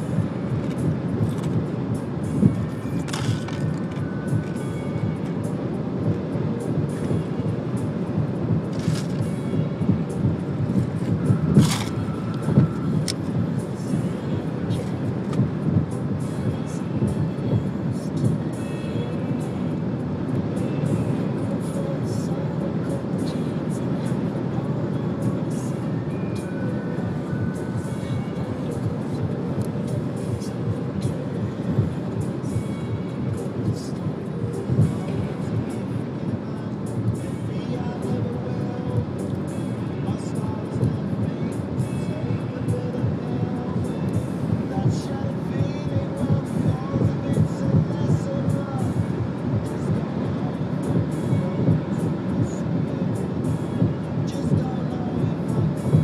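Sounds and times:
car driving on highway: 0.0s - 56.0s
music playing: 0.0s - 56.0s.

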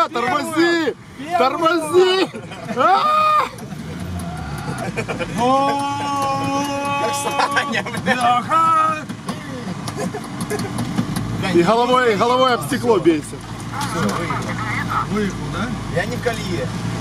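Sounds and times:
men shouting: 0.0s - 9.0s
low engine rumble: 0.0s - 17.0s
long drawn-out yell: 2.8s - 3.6s, 5.4s - 7.8s.

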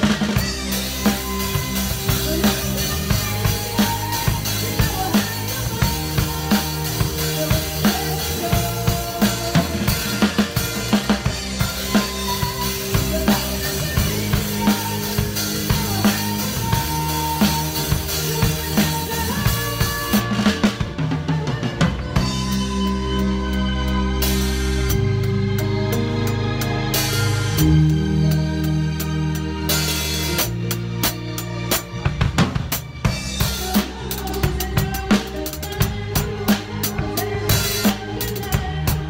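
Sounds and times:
band bass and chords: 0.0s - 39.0s
drum kit playing a steady beat: 0.0s - 39.0s.

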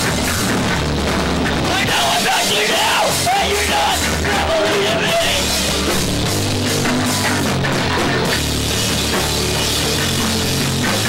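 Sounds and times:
punk rock band playing: 0.0s - 11.0s
singer yelling: 1.6s - 5.9s.

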